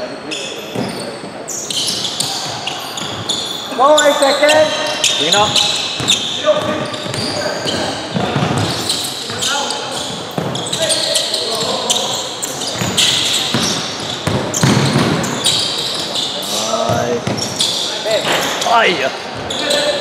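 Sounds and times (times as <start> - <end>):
voices calling out: 0.0 - 20.0
basketball bouncing on hardwood: 5.5 - 8.9, 10.0 - 10.6, 12.8 - 15.4.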